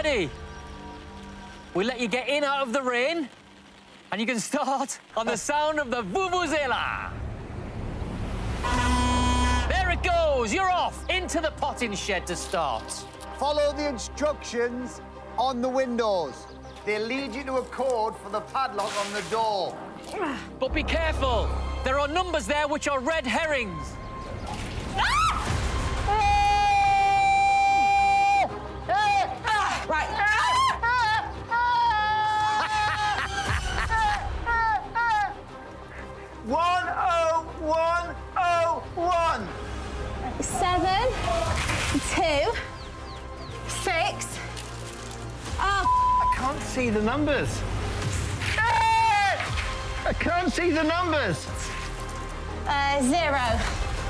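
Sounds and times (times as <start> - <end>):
background music: 0.0 - 54.0
vuvuzela buzzing note: 8.6 - 9.7
person screaming and shrieking: 30.2 - 35.3.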